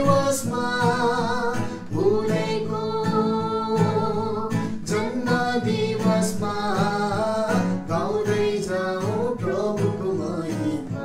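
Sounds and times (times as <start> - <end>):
man and woman singing: 0.0 - 11.0
strummed acoustic guitar: 0.0 - 11.0.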